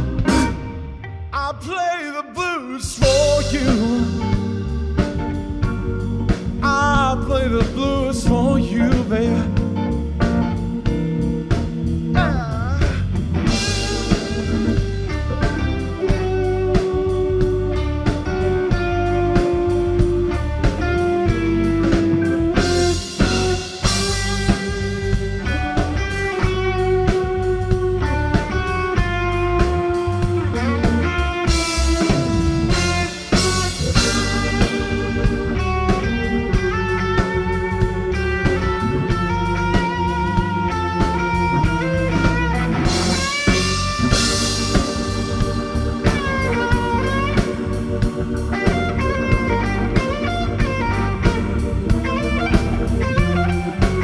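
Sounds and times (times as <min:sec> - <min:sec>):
bass: 0:00.0 - 0:54.0
drums: 0:00.0 - 0:54.0
keyboards: 0:00.0 - 0:54.0
lead electric guitar with vibrato: 0:00.0 - 0:54.0.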